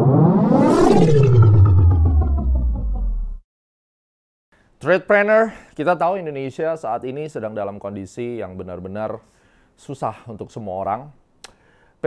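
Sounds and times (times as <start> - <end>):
deep low boom: 0.0 - 3.4
whoosh: 0.0 - 3.4.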